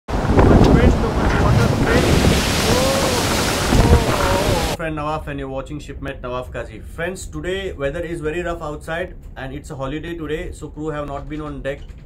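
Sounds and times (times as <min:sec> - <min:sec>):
strong wind rushing: 0:00.1 - 0:04.8
waves breaking: 0:00.1 - 0:04.8
whistling wind: 0:00.1 - 0:04.8.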